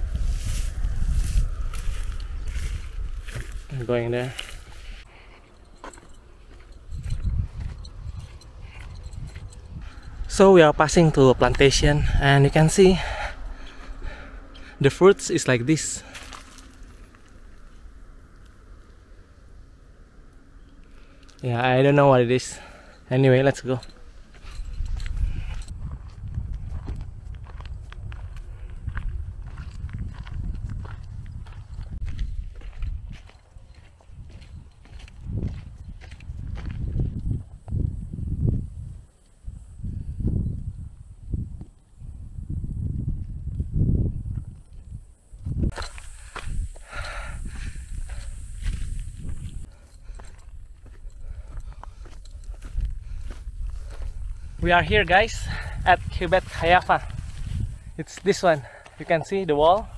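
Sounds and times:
footsteps crunching on dirt: 0.0 - 17.8, 22.4 - 37.8, 45.4 - 59.9
wind buffeting microphone: 0.0 - 19.2, 22.2 - 59.9.

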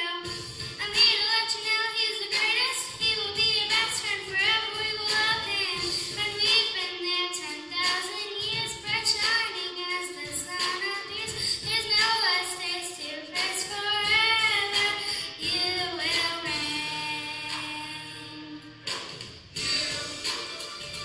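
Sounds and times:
children and woman singing: 0.0 - 18.6
musical accompaniment: 14.7 - 21.0.

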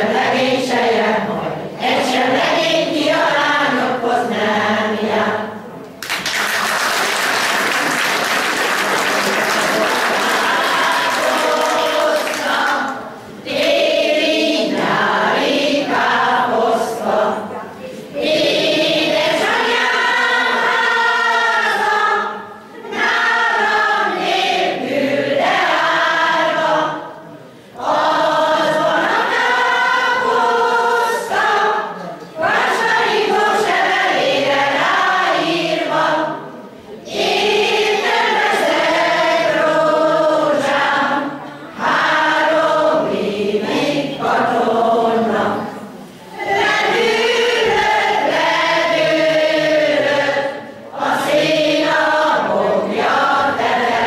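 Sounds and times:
folk choir singing: 0.0 - 5.7, 7.4 - 54.0.

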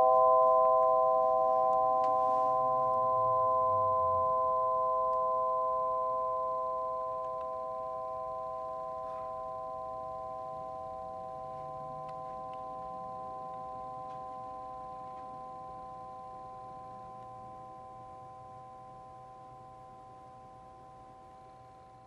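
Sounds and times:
metal rods ringing pure tones: 0.0 - 19.1.

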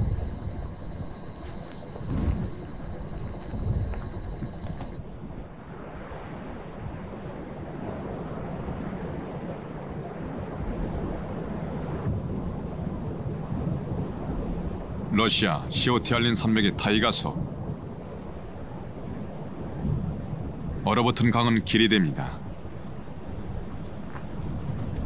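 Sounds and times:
deep thuds: 0.0 - 5.5
faint steady high tone: 0.0 - 12.1
rumbling wind noise: 0.0 - 25.0.

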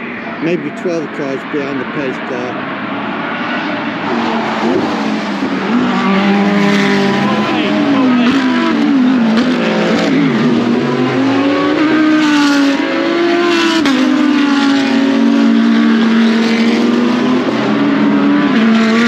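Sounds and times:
race cars passing: 0.0 - 19.0.

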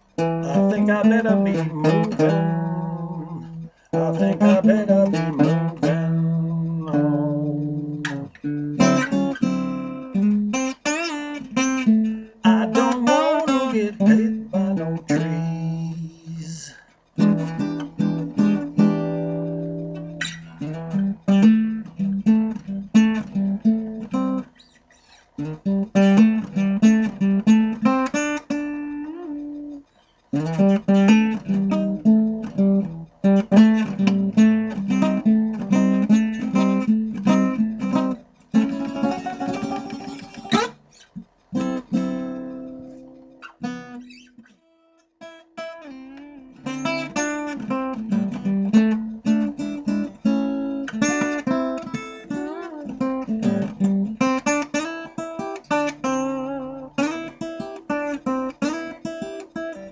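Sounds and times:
acoustic guitar: 0.0 - 59.9.

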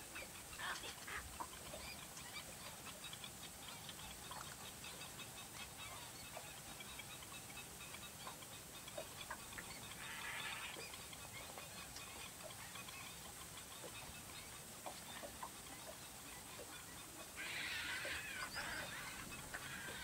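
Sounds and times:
birds calling hoarsely: 0.0 - 20.0.

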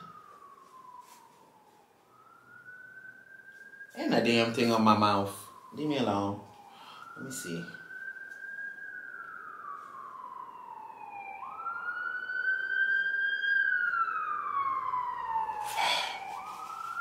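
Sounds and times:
emergency vehicle siren wailing: 0.0 - 17.0.

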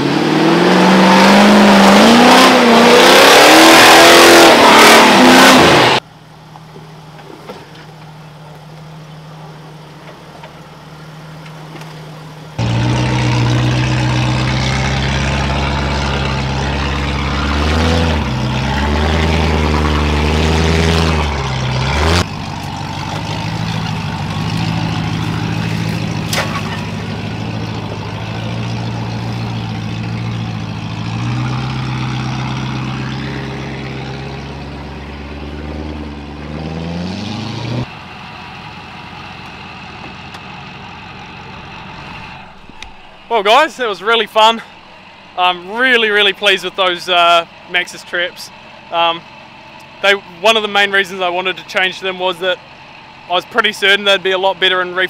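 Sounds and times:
off-road engines revving: 0.0 - 55.0.

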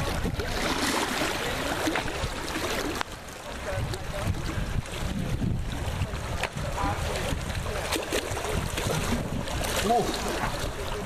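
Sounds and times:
wind on microphone: 0.0 - 1.2, 3.6 - 11.0
pool water splashing: 0.0 - 11.0.

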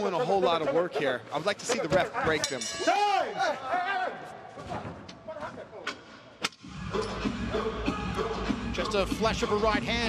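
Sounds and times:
music: 6.6 - 10.0.

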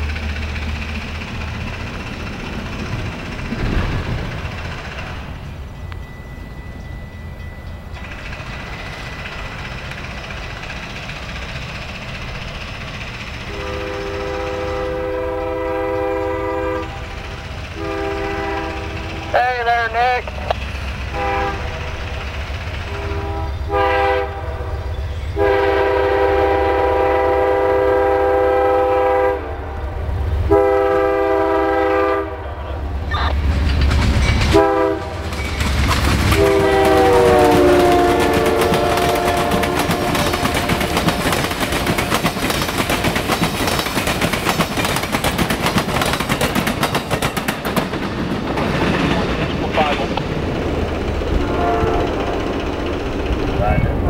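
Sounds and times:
train wheels clattering on rails: 0.0 - 28.7, 32.8 - 54.0
locomotive horn blasts: 13.5 - 17.1, 17.8 - 20.2, 21.1 - 21.8, 22.9 - 24.8, 25.4 - 29.7, 30.5 - 32.8, 34.5 - 35.3, 36.3 - 41.0, 51.4 - 52.2.

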